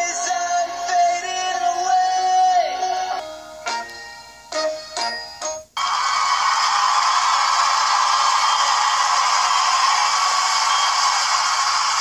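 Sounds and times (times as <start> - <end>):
static hiss: 2.9 - 12.0.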